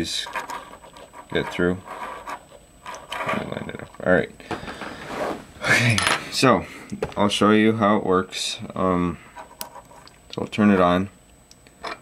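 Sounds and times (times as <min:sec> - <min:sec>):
circuit board rubbing on carpet: 0:05.0 - 0:05.5.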